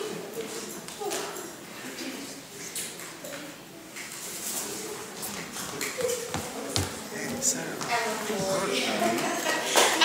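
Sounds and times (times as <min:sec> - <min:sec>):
quiet voices murmuring: 0:00.0 - 0:10.0.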